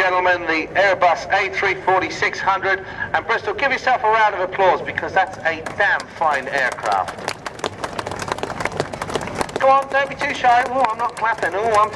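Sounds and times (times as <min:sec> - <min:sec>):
people clapping: 0:05.3 - 0:11.9.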